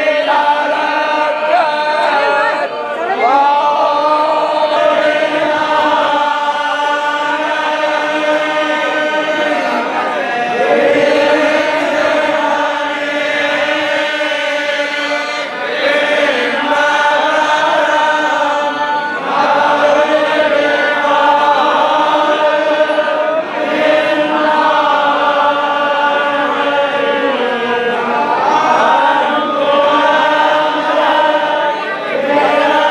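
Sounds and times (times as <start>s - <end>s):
men chanting in unison: 0.0s - 32.9s.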